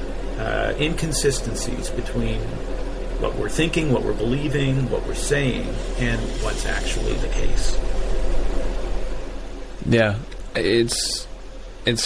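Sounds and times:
men talking: 0.4s - 7.8s, 9.8s - 12.0s.

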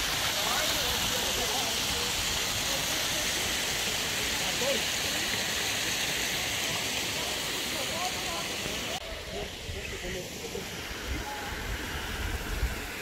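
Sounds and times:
stream rushing over rocks: 0.0s - 13.0s
faint voices talking: 0.1s - 13.0s.

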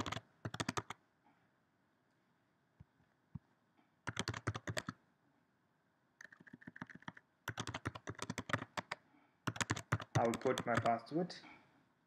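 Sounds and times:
typing on a computer keyboard: 0.0s - 1.0s, 4.1s - 5.0s, 6.2s - 11.0s.

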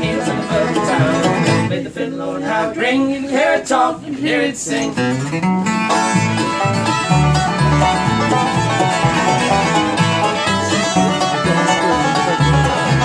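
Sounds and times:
upright bass walking notes: 0.0s - 1.7s, 5.0s - 13.0s
banjo: 0.0s - 1.8s, 4.7s - 13.0s
fiddle: 0.0s - 1.8s, 5.1s - 13.0s
mandolin: 0.0s - 1.8s, 4.7s - 13.0s
acoustic guitar: 0.0s - 13.0s.

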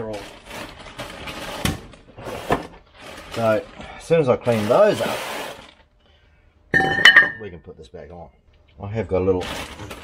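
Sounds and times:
metal disc clanking and ringing: 6.8s - 7.5s.

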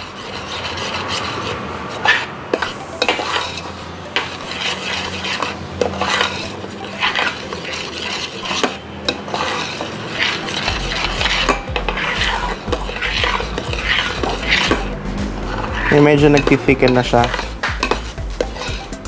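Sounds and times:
metal spoon scraping a pot: 0.0s - 19.0s.

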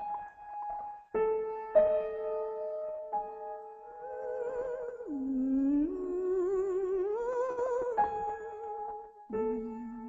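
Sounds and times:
woman singing classical notes: 3.6s - 10.0s.

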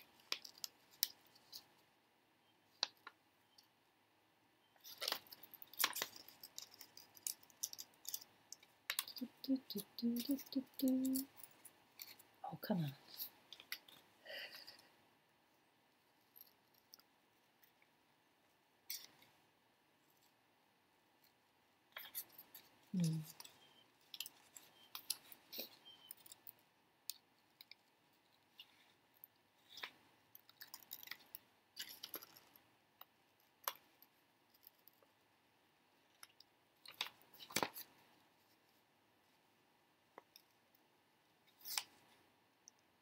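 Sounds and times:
person humming: 9.2s - 11.3s, 22.9s - 23.3s.

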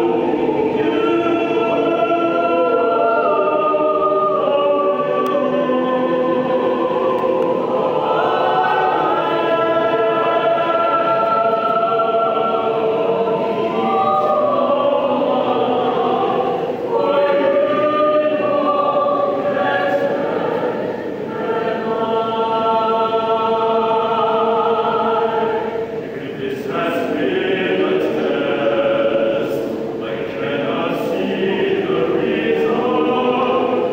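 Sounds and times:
mixed choir singing: 0.0s - 33.9s.

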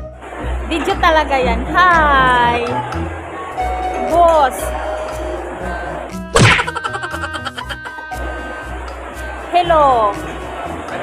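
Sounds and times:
background music: 0.0s - 11.0s
comic whack with falling pitch: 6.4s - 6.8s.

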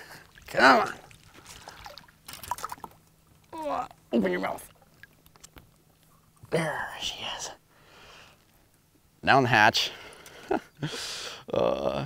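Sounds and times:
fish splashing in water: 0.0s - 3.2s
water trickling: 0.0s - 6.4s.

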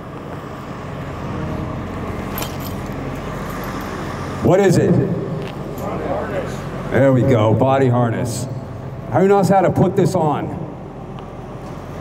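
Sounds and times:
low mechanical hum: 0.0s - 12.0s
metallic jingle of harness buckles: 2.3s - 4.0s, 5.7s - 6.0s.

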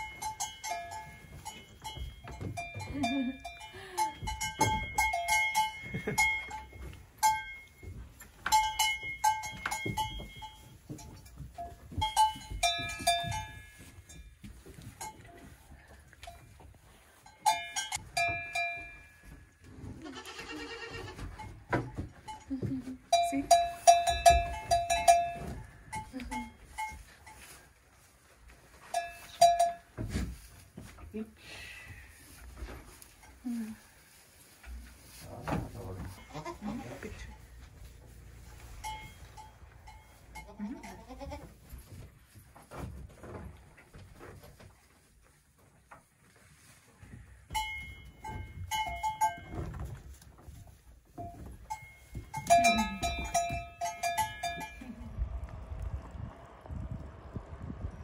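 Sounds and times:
metal bell clanking: 0.0s - 14.4s, 17.3s - 19.4s, 21.4s - 27.1s, 28.9s - 29.9s, 38.8s - 41.2s, 47.5s - 49.9s, 51.2s - 55.0s
young goat bleating: 20.0s - 21.3s, 36.2s - 37.0s, 40.4s - 41.6s.

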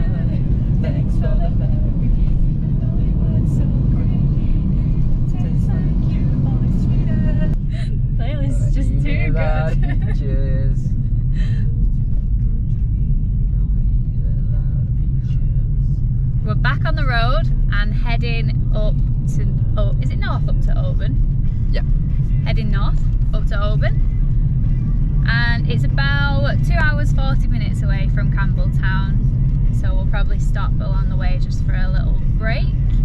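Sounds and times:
car cabin road rumble: 0.0s - 33.0s.

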